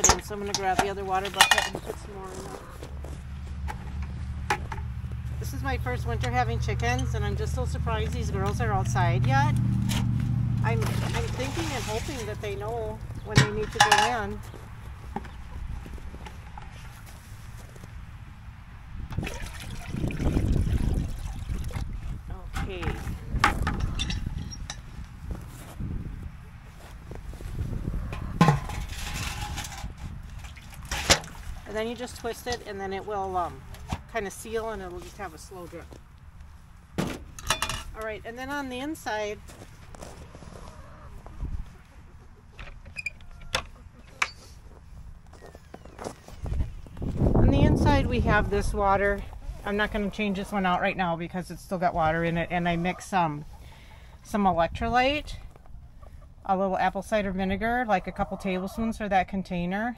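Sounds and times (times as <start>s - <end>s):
metal tank knocking and clanking: 13.2s - 14.3s, 28.1s - 29.8s
footsteps on snow: 14.3s - 18.1s, 25.0s - 28.0s, 39.2s - 41.8s, 44.5s - 47.4s
water pouring into metal tank: 19.1s - 21.8s.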